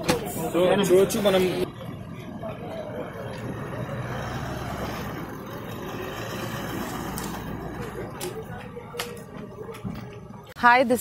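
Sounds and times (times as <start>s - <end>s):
car engine rumbling past: 0.2s - 10.5s.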